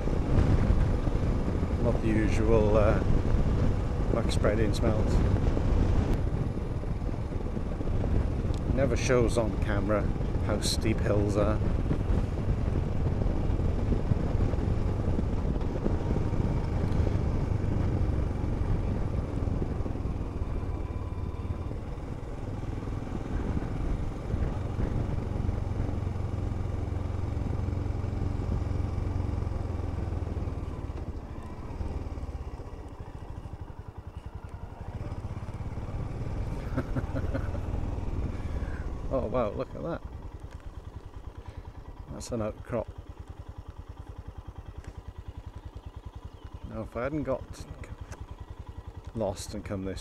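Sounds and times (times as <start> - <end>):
motorcycle engine running: 0.0 - 50.0.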